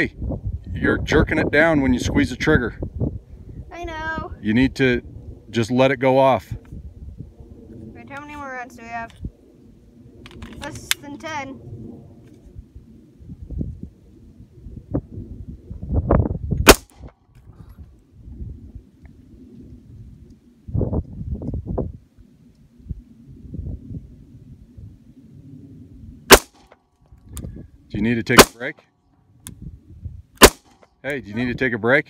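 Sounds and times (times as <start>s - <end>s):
low rumbling noise: 0.0s - 28.6s
pistol shots: 16.6s - 17.1s, 26.3s - 26.8s, 28.3s - 28.6s, 30.4s - 30.8s.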